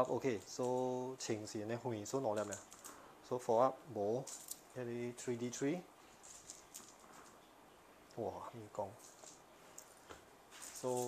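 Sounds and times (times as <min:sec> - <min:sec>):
dice rolling on mat: 0:06.2 - 0:07.4, 0:09.0 - 0:11.0.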